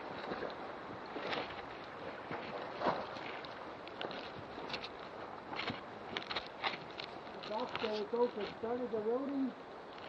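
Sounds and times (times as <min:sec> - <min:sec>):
steady outdoor hiss: 0:00.0 - 0:10.0.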